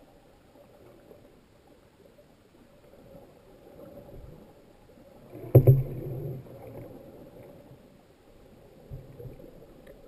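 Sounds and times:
muffled underwater water noise: 0.0s - 10.0s.

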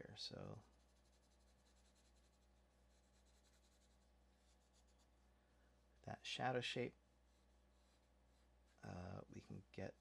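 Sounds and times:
low steady hum: 0.0s - 10.0s
pencil scratching on paper: 0.6s - 5.1s.

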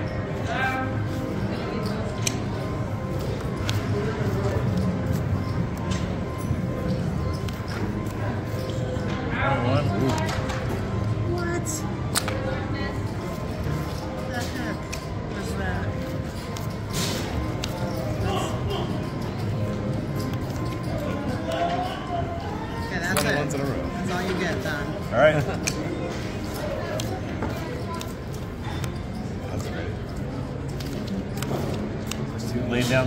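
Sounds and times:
background music: 0.0s - 33.0s
people chattering: 0.0s - 33.0s
playing cards clicking: 3.3s - 4.8s, 12.1s - 12.4s, 16.4s - 17.8s, 25.5s - 25.9s, 26.5s - 29.0s, 30.7s - 32.3s.

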